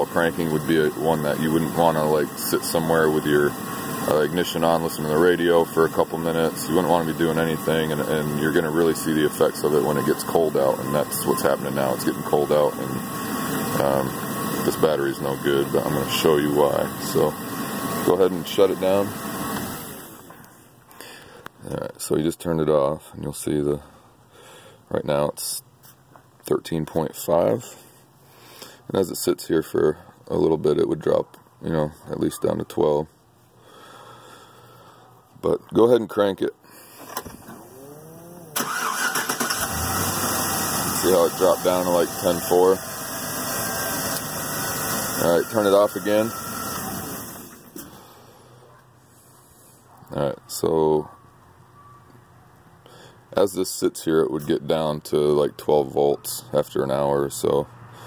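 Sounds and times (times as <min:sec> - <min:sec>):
van engine switched off: 0:00.0 - 0:20.3, 0:37.0 - 0:48.4
van engine switching off: 0:37.1 - 0:48.3.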